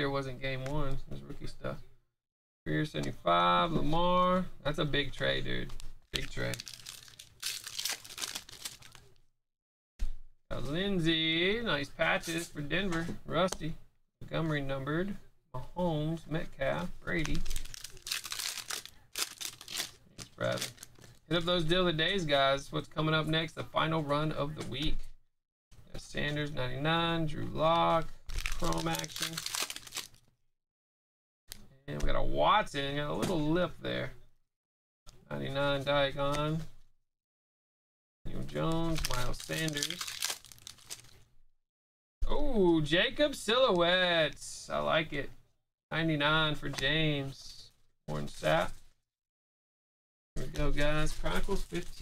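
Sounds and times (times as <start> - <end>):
card pack wrapper tearing: 6.2 - 9.2, 17.1 - 21.2, 28.3 - 30.2, 38.8 - 41.2.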